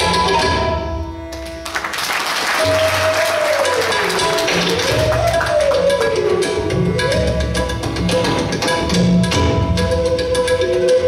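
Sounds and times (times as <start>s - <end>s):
audience applauding: 1.4s - 6.0s
bamboo flute sliding note: 3.4s - 8.3s.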